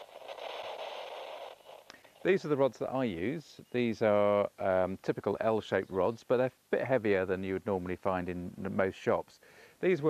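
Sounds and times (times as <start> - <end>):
static hiss: 0.0 - 10.0.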